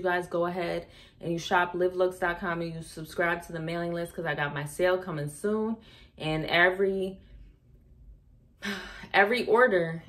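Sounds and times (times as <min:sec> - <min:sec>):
woman speaking: 0:00.0 - 0:07.2, 0:08.6 - 0:10.0.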